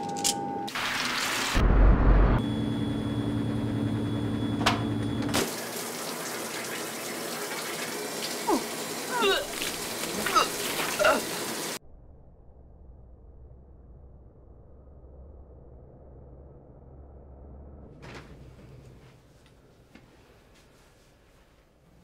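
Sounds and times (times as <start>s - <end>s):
loud low rumble: 1.6s - 4.2s, 11.8s - 18.2s
steady hum: 1.6s - 5.4s
tap water running into sink: 5.4s - 11.8s.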